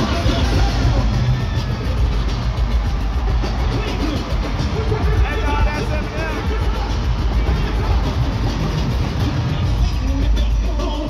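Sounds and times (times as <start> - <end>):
live band music with heavy bass: 0.0 - 11.0.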